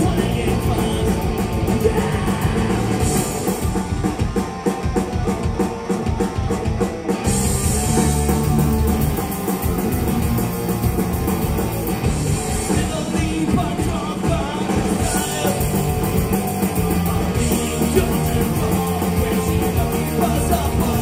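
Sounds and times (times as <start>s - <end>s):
bass guitar: 0.0s - 21.0s
distorted electric guitars: 0.0s - 21.0s
drum kit: 0.0s - 21.0s.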